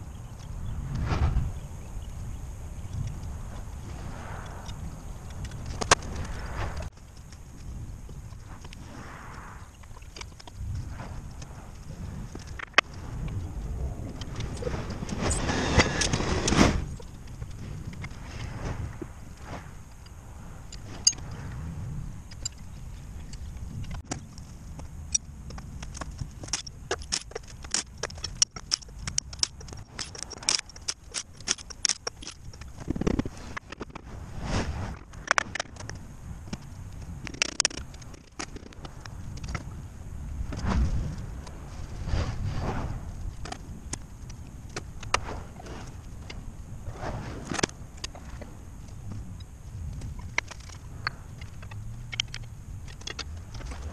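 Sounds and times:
rush of noise: 0.0s - 25.4s, 32.6s - 44.4s
low rumble: 0.0s - 26.4s.

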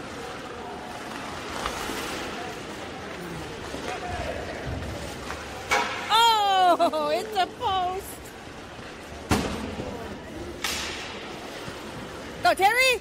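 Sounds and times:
faint voices in stands: 0.0s - 6.7s
arena noise: 0.0s - 13.0s
sharp crack: 10.6s - 11.2s.

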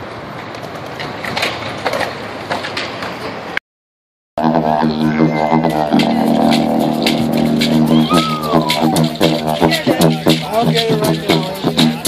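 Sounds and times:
didgeridoo drone: 4.4s - 12.0s.

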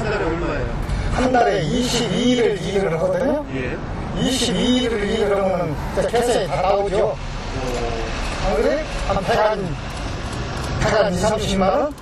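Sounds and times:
man's voice: 0.0s - 7.9s.

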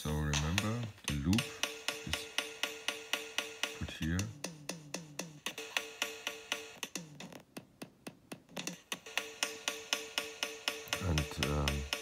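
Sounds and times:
electronic drum loop: 0.0s - 12.0s.

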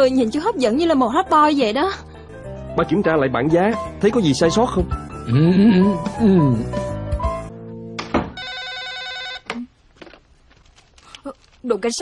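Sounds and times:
music: 0.0s - 8.4s
telephone ringing: 8.3s - 9.6s.

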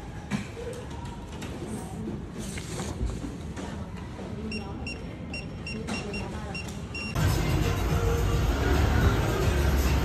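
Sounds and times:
low background murmur: 0.0s - 7.2s.

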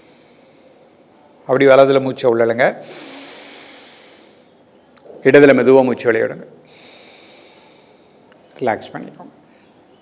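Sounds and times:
breath hissing through nostril: 0.0s - 1.1s, 2.8s - 4.6s, 6.7s - 8.3s.

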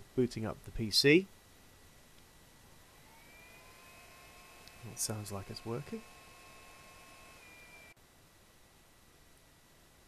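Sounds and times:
desktop computer fans whining: 2.7s - 8.0s.

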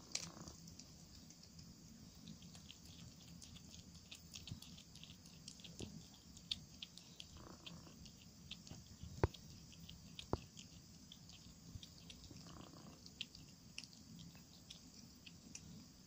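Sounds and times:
cat chewing crunching clicks: 0.0s - 16.0s.

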